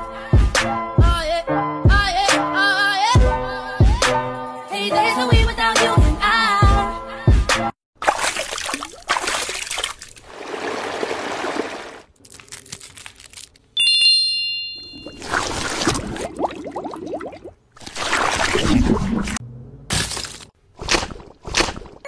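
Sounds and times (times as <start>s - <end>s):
bright chime ding: 13.8s - 15.2s.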